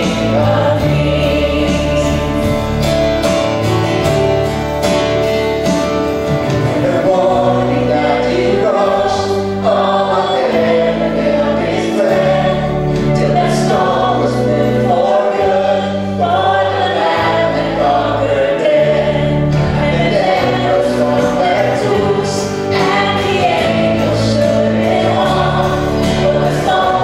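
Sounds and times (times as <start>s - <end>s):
male and female voices singing: 0.0s - 2.9s, 6.6s - 27.0s
acoustic guitar: 0.0s - 27.0s
bass guitar: 0.0s - 27.0s
piano: 0.0s - 27.0s.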